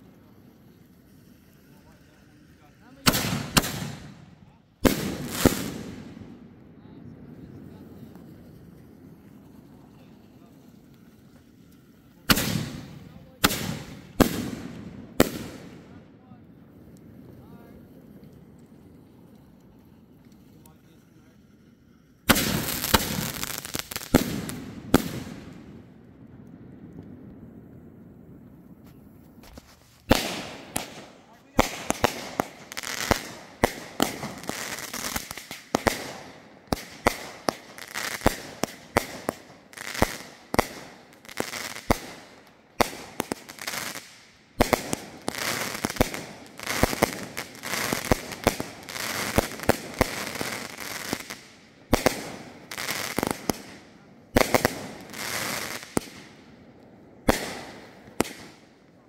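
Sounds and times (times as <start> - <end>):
fireworks bangs: 0.0 - 19.5, 22.2 - 59.0
fireworks crackling: 0.0 - 59.0.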